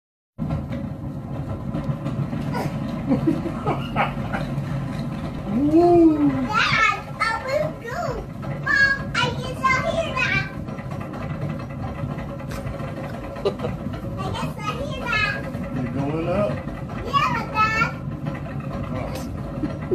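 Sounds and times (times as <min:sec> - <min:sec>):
roller coaster rumbling on track: 0:00.4 - 0:19.9.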